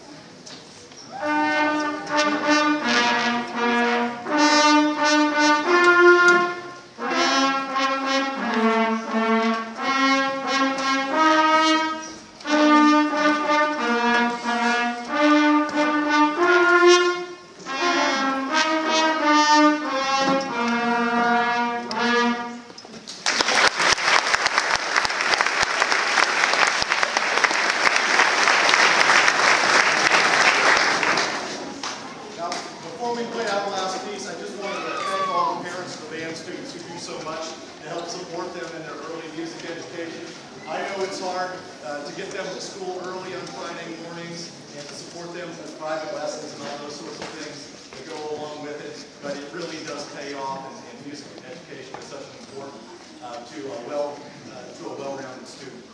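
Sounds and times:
concert band with trumpets: 0.0s - 55.9s
audience applauding: 23.1s - 32.0s.

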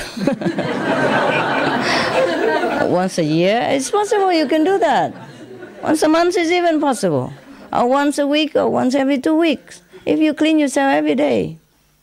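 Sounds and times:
audience laughing: 0.0s - 3.1s, 3.7s - 7.7s.

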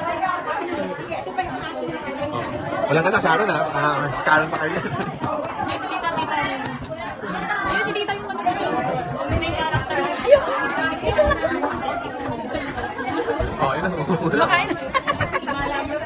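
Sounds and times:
overlapping chatter: 0.0s - 16.0s.

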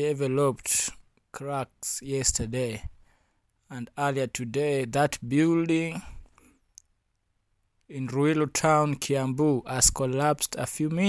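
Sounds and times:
narrator voice: 0.0s - 2.9s, 3.7s - 6.2s.

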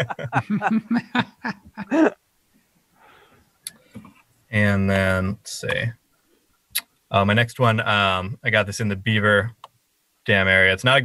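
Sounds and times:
person speaking: 0.0s - 2.2s, 3.7s - 6.0s
faint breathy sound: 2.9s - 4.1s.

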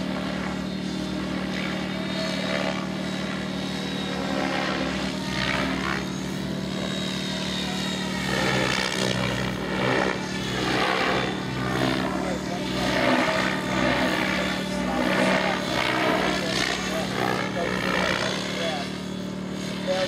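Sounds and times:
model helicopter motor hum: 0.0s - 20.0s
rotor blades whooshing: 0.0s - 20.0s.

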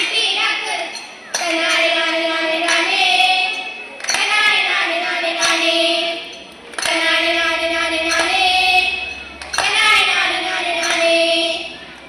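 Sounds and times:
girls singing folk song together: 0.0s - 12.0s.

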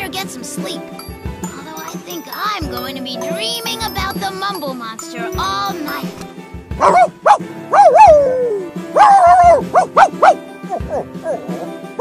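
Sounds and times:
background music with steady beat: 0.0s - 12.0s
cartoon dog yipping and whining: 6.8s - 11.6s.

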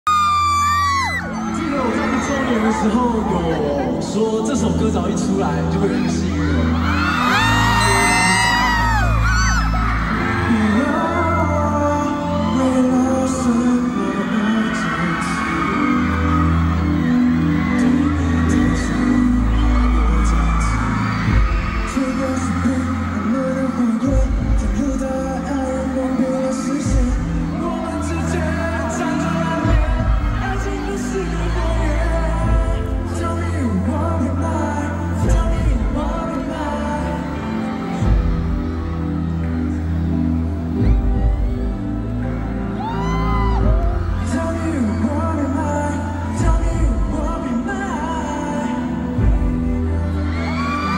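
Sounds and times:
live pop song over sound system: 0.0s - 50.9s
audience whooping: 6.5s - 32.5s, 50.0s - 50.9s.

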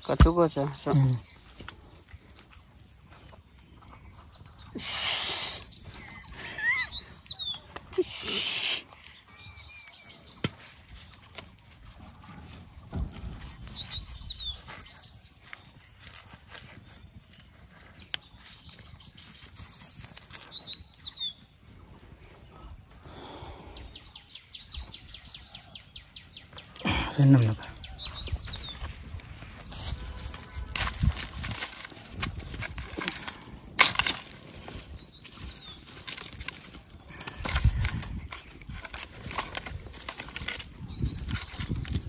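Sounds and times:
food packed into bamboo tube: 0.0s - 42.0s
songbirds calling: 0.0s - 42.0s.

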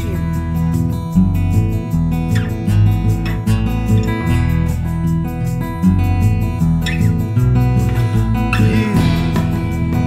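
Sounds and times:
bass guitar: 0.0s - 10.0s
drums: 0.0s - 10.0s
strummed guitar: 0.0s - 10.0s.

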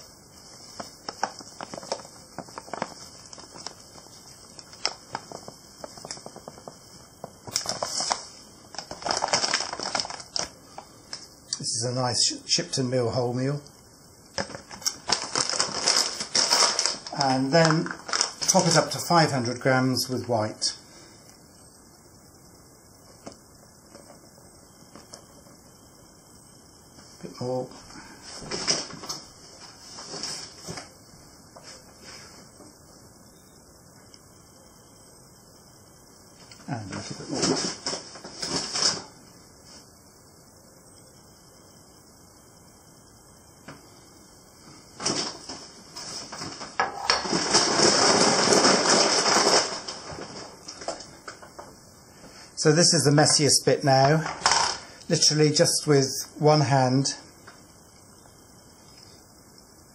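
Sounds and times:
flour rustling into plastic bowl: 0.0s - 10.9s, 14.4s - 20.2s.

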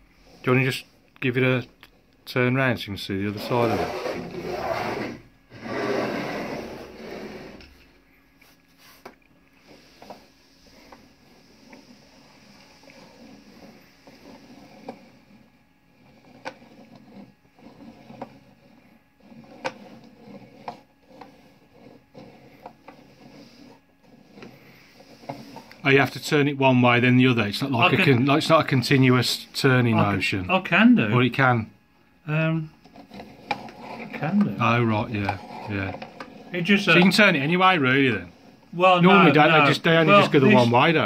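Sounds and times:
wood scraping on table: 3.3s - 8.0s, 8.8s - 25.9s, 32.8s - 40.8s.

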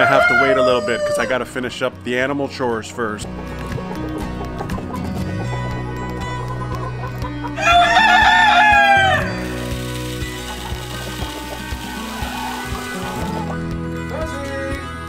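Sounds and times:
rooster crowing: 0.0s - 1.4s, 7.6s - 9.6s, 10.3s - 13.5s
feed pellets pouring into feeder: 9.4s - 13.4s.

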